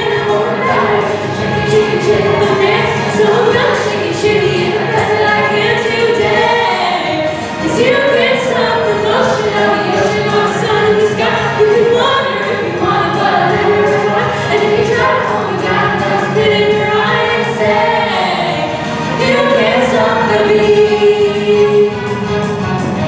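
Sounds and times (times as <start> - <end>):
young performers singing in chorus: 0.0 - 22.4
musical accompaniment: 0.0 - 23.0.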